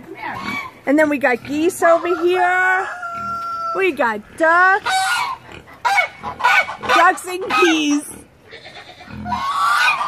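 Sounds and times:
geese honking: 0:04.8 - 0:10.0.

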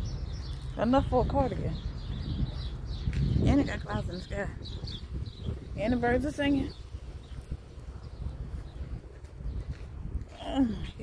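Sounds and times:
footsteps on pavement: 0:00.0 - 0:11.0
wind rumble: 0:00.0 - 0:11.0.

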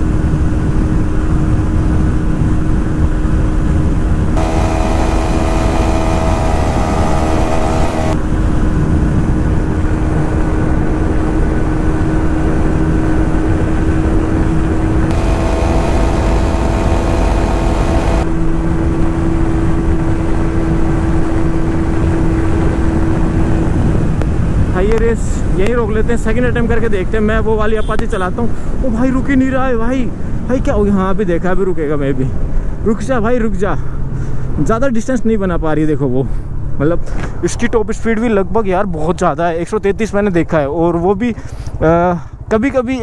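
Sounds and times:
wind rush: 0:00.0 - 0:27.1
higher-pitched engine note: 0:04.4 - 0:08.2, 0:15.1 - 0:18.3
motorcycle engine high note: 0:04.4 - 0:08.2, 0:15.1 - 0:18.2.

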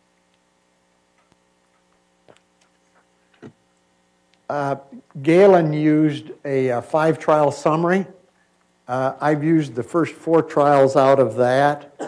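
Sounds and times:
faint electrical hum: 0:00.0 - 0:12.0.

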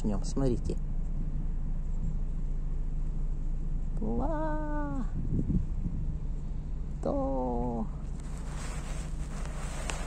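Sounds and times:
low background hum: 0:00.0 - 0:10.0.

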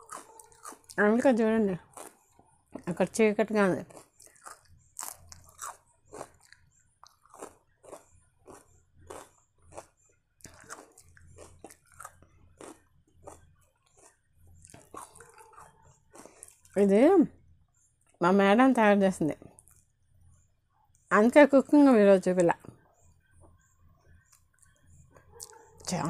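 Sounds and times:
close chewing mouth sounds: 0:00.0 - 0:01.0, 0:01.8 - 0:02.8, 0:03.8 - 0:16.8, 0:24.1 - 0:26.0.

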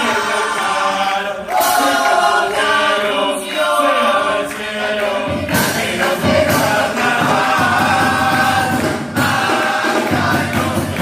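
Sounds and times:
chorus singing: 0:00.0 - 0:11.0.

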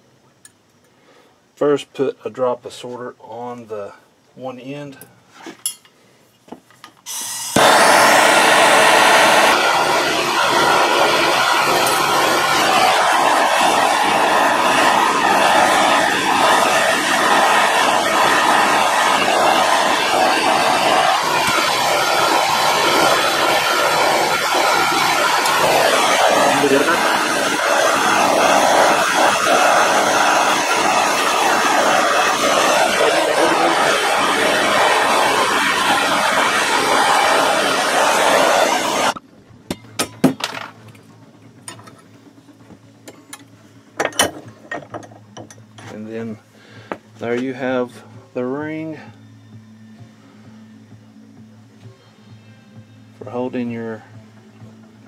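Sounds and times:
gas torch hissing: 0:07.1 - 0:39.2.

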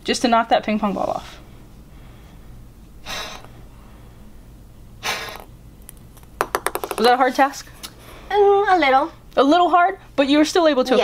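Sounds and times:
ping pong ball bouncing on table: 0:06.4 - 0:07.4.

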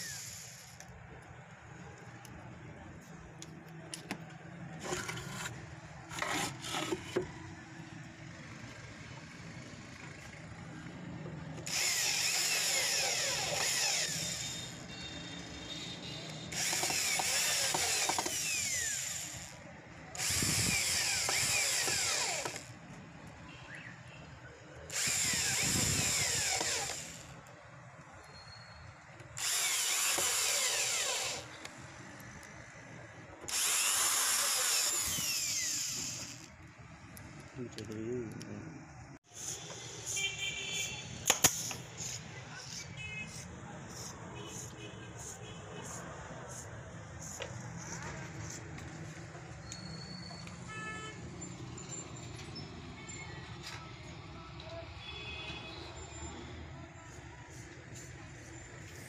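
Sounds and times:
power drill driving screws: 0:00.0 - 0:00.9, 0:11.6 - 0:15.0, 0:16.5 - 0:19.6, 0:20.2 - 0:22.8, 0:24.9 - 0:27.5, 0:29.2 - 0:31.7, 0:33.4 - 0:36.6.

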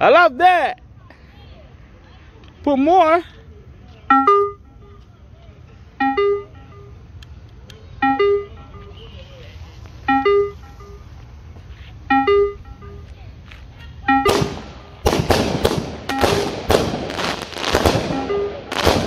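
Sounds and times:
fireworks crackling and banging: 0:14.3 - 0:19.0.

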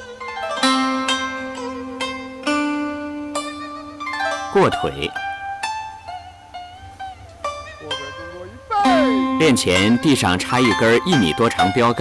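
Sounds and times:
plucked zither-like string instrument: 0:00.0 - 0:12.0.

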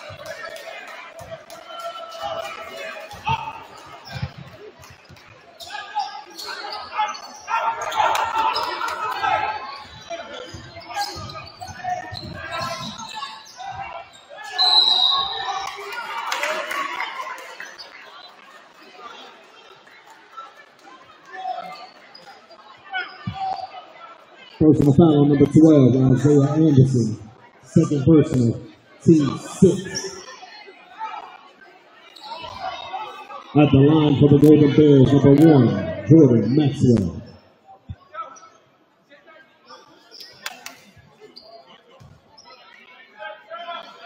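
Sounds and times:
crowd voices: 0:00.0 - 0:44.0
referee's whistle blast: 0:14.4 - 0:15.5.

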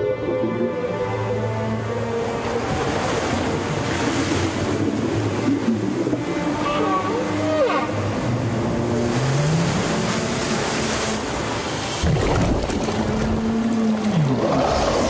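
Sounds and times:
rushing churning water: 0:00.0 - 0:15.0.

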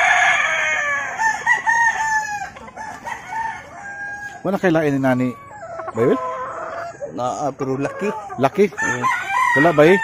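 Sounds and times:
rooster crowing: 0:00.0 - 0:04.6, 0:08.8 - 0:10.0.

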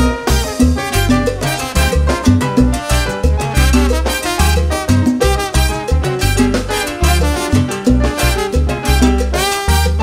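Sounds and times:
bass line: 0:00.0 - 0:10.0
percussion: 0:00.0 - 0:10.0
trumpets and trombones: 0:00.0 - 0:10.0.

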